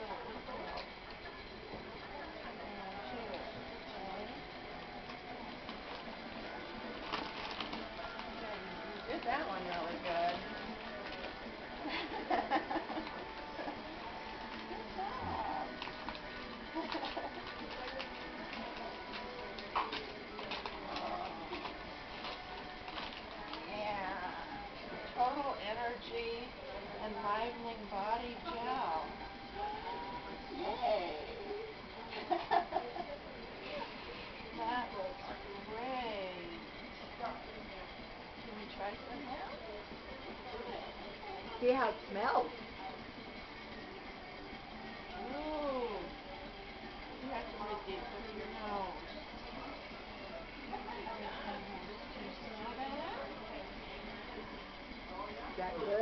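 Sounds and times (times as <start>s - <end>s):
low hum of room equipment: 0.0s - 56.0s
wrapping paper crinkling: 6.9s - 8.6s, 15.4s - 23.7s.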